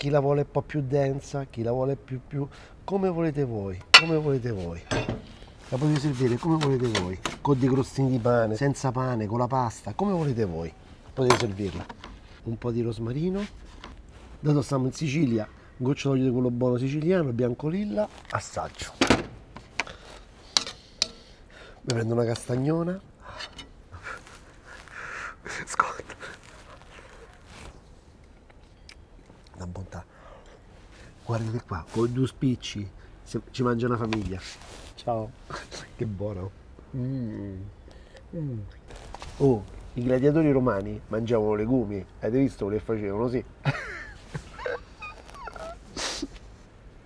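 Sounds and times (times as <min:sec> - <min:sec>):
metal spoon clinking on pan: 0:03.9 - 0:05.2, 0:20.6 - 0:21.2
man laughing softly: 0:23.9 - 0:27.0, 0:43.6 - 0:46.5.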